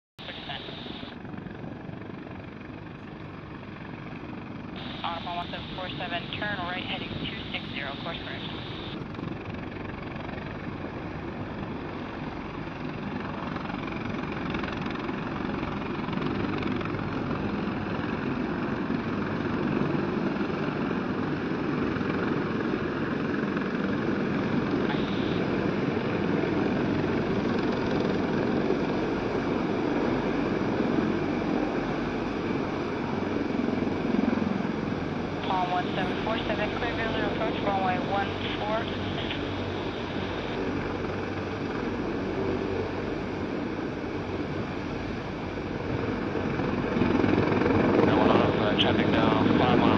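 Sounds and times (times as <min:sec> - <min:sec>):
helicopters droning: 0:00.2 - 0:49.9.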